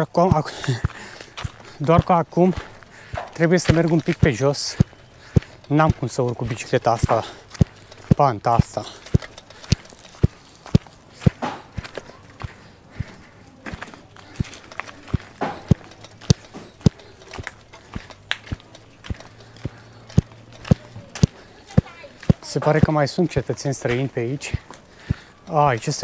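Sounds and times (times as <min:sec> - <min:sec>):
footsteps crunching on dirt path: 0:00.1 - 0:26.0.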